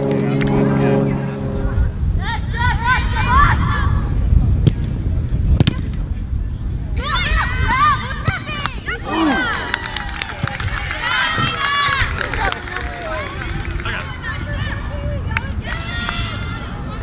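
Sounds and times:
wind rumbling on microphone: 0:00.0 - 0:17.0
high voices shouting: 0:08.8 - 0:10.1.

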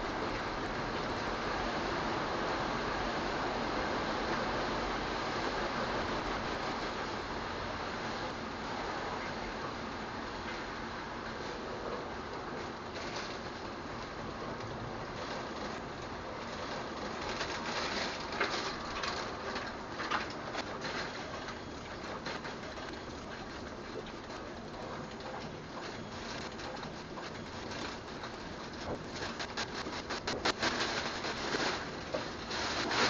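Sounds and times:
steady rain falling: 0:00.0 - 0:33.0.

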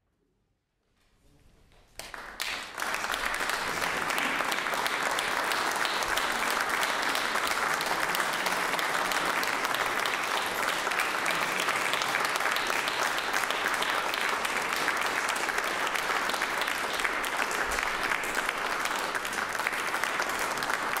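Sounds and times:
audience applauding: 0:02.0 - 0:21.0.

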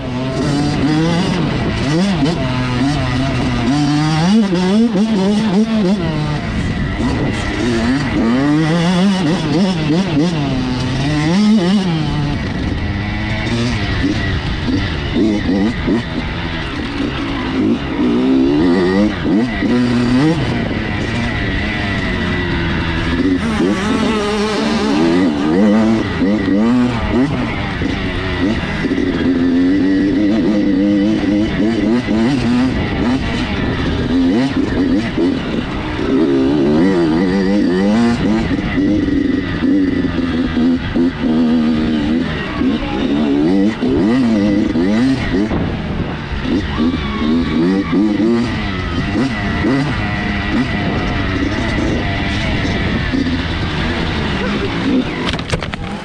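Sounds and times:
dirt bike engine revving: 0:00.0 - 0:56.0.

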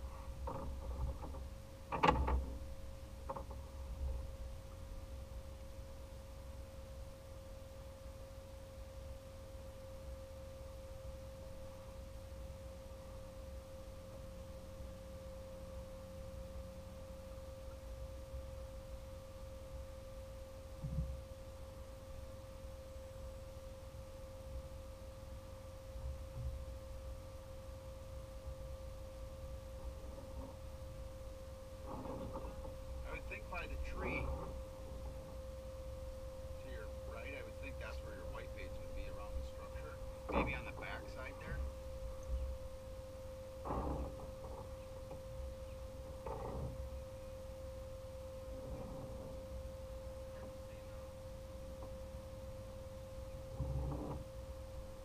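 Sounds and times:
steady hum: 0:00.0 - 0:55.0
low rumble: 0:23.8 - 0:47.6.

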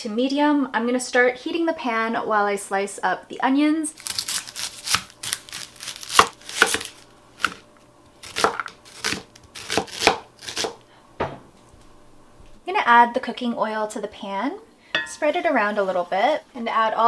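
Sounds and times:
knife slicing onion on mat: 0:04.0 - 0:07.6, 0:08.2 - 0:10.8.

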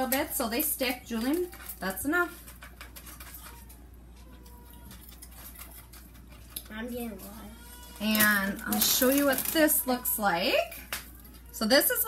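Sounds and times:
plastic wrap and cereal rustling: 0:00.0 - 0:12.0.

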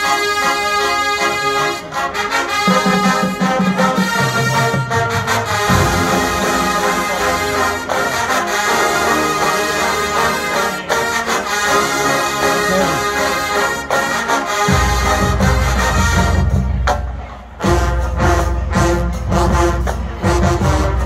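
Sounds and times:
sustained brass chords: 0:00.0 - 0:16.9
marching band playing: 0:00.0 - 0:21.0.

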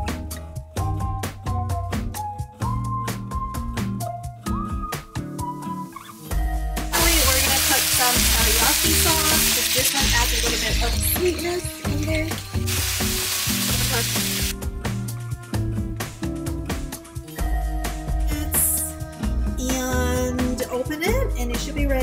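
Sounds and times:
background music: 0:00.0 - 0:22.0
food sizzling in oil: 0:05.9 - 0:14.6.

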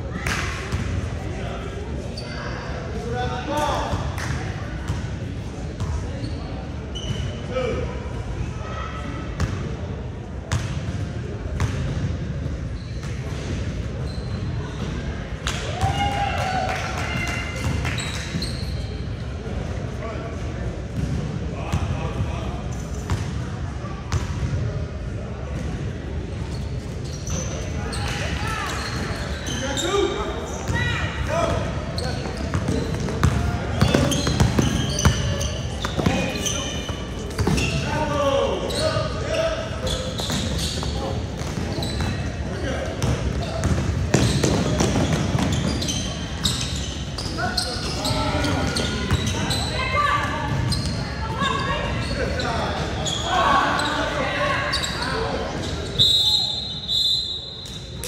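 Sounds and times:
voices calling out in echoing hall: 0:27.2 - 0:58.0.

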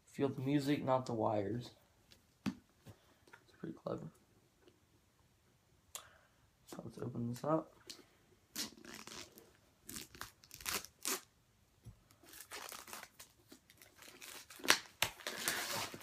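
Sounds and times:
packaging scraping and rustling: 0:12.2 - 0:16.0.

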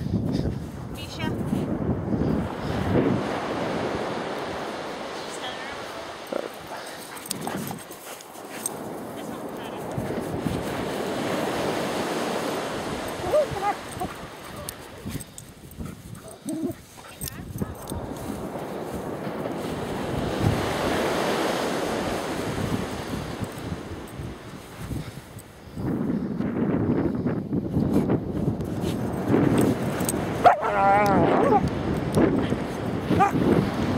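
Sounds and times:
wind on microphone: 0:00.0 - 0:33.9
puppies digging in sand: 0:06.0 - 0:20.0.

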